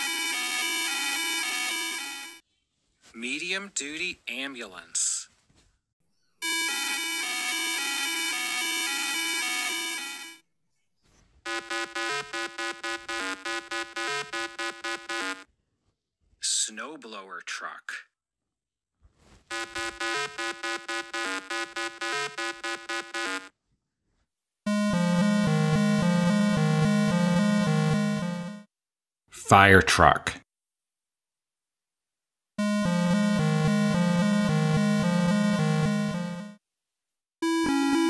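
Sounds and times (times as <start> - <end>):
eight-bit synthesizer music: 0.0 - 2.4, 6.4 - 10.4, 11.5 - 15.4, 19.5 - 23.5, 24.7 - 28.7, 32.6 - 36.6, 37.4 - 38.0
rapid choppy stepping siren tone: 6.4 - 10.4, 11.5 - 15.4, 19.5 - 23.5, 24.7 - 28.7, 32.6 - 36.6, 37.4 - 38.0.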